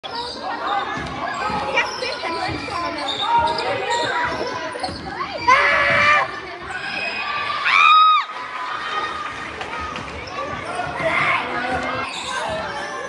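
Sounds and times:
players' voices: 0:00.0 - 0:13.0.

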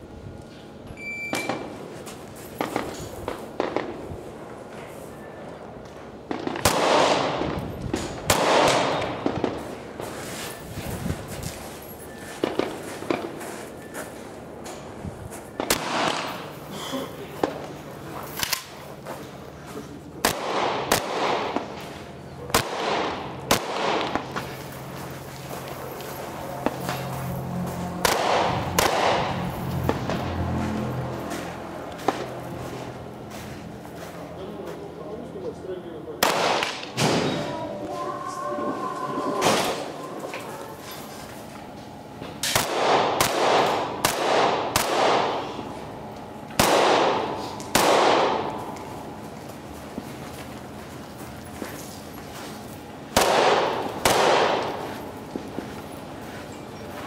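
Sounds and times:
rifle shots echoing: 0:06.3 - 0:07.5, 0:08.2 - 0:09.6, 0:22.5 - 0:24.3, 0:28.0 - 0:30.0, 0:36.2 - 0:37.3, 0:42.5 - 0:45.5, 0:46.6 - 0:48.7, 0:53.2 - 0:54.8.

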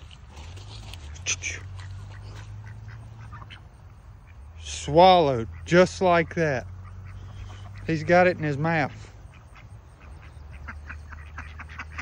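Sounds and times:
ducks quacking faintly: 0:00.0 - 0:12.0.

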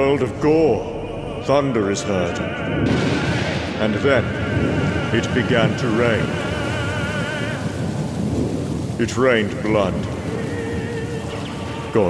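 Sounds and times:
thunder rumbling: 0:00.0 - 0:12.0
steady rain: 0:01.8 - 0:12.0.

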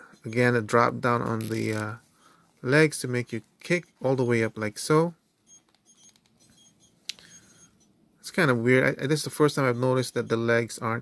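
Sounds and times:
plastic toy handling noise: 0:01.2 - 0:02.0.

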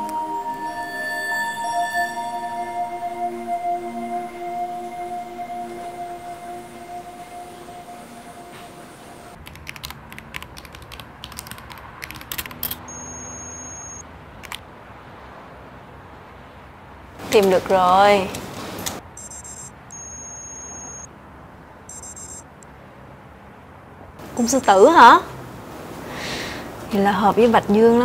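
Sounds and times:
held music notes: 0:00.0 - 0:09.4
steady electronic tone: 0:00.0 - 0:09.4, 0:12.9 - 0:14.0, 0:19.2 - 0:21.1
computer keyboard typing: 0:09.4 - 0:14.6.

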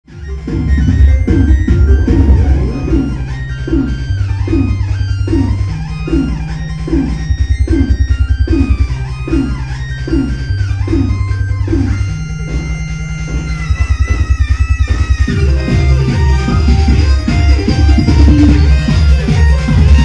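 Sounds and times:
repeating falling synth figure: 0:00.1 - 0:16.2
deep sustained bass notes: 0:00.2 - 0:20.0.

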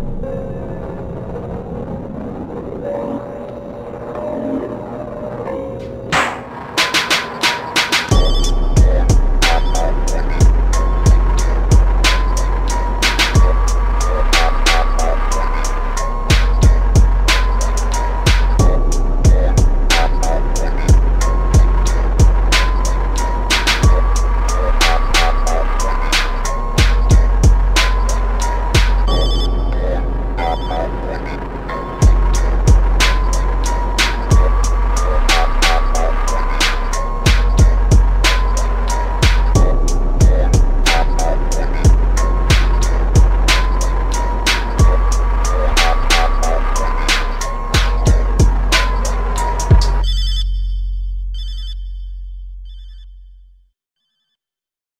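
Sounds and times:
slowed hip-hop instrumental: 0:02.7 - 0:50.3
high warbling tone bursts: 0:02.8 - 0:52.2
heavy bass hit: 0:06.1 - 0:07.0, 0:08.1 - 0:30.4, 0:32.0 - 0:50.0
ringing bell-like chime: 0:28.0 - 0:29.8.

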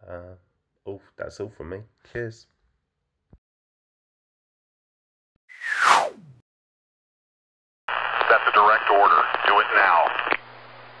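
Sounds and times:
radio-like voice speaking: 0:08.0 - 0:10.4.

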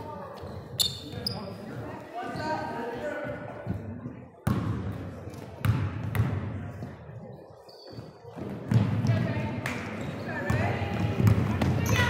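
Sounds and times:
echoing voices in a hall: 0:00.0 - 0:12.0
basketball bouncing on hardwood floor: 0:05.6 - 0:06.4, 0:10.5 - 0:12.0.

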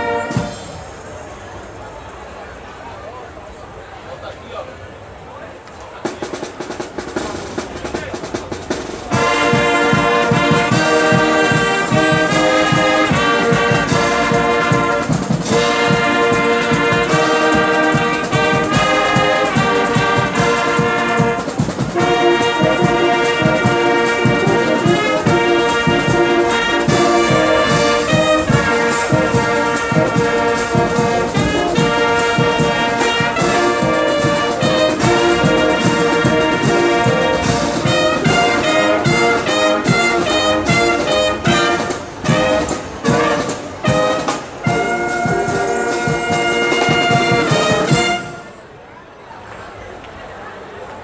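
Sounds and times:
marching band brass playing chords: 0:00.0 - 0:01.0, 0:06.0 - 0:48.8.

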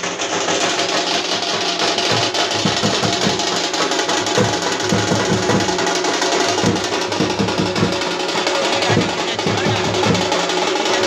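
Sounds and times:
loud fast drumming: 0:00.0 - 0:11.0.

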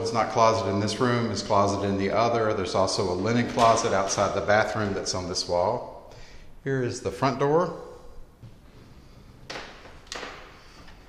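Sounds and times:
soft footsteps on hardwood floor: 0:08.3 - 0:10.0.

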